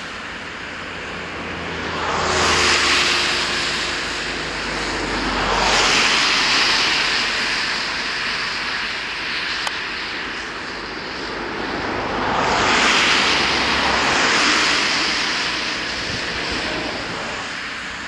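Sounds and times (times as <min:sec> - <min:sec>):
cars passing on wet road: 0:00.0 - 0:18.0.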